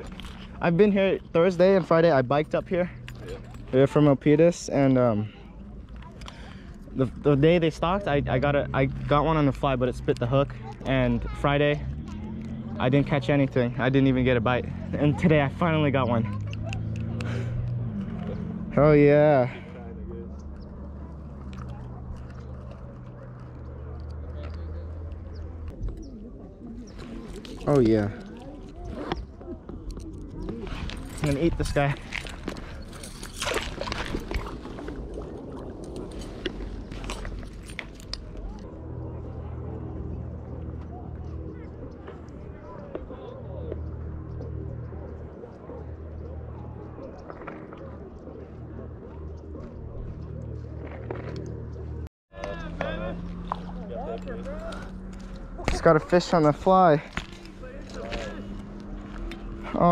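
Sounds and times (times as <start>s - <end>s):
low outdoor rumble: 0.0s - 59.9s
faint voices talking: 2.8s - 35.0s, 37.1s - 59.9s.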